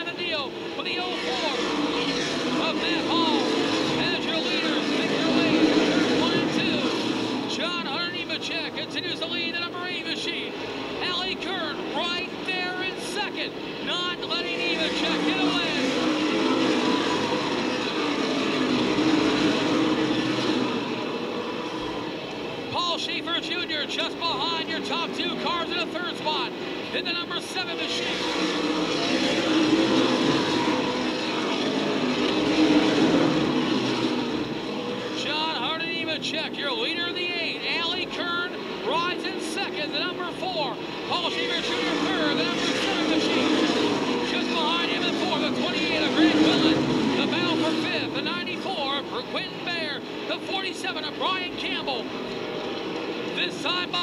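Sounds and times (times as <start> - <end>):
race car engines racing: 0.0 - 54.0.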